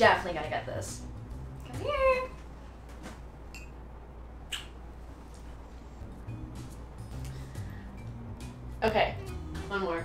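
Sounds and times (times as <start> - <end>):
low hum: 0.0 - 10.0
kiss lip smack: 4.5 - 4.8.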